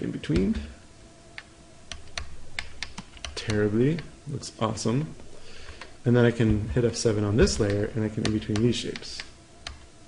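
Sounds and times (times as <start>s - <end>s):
keyboard and mouse clicks: 1.4s - 4.1s, 7.5s - 9.9s.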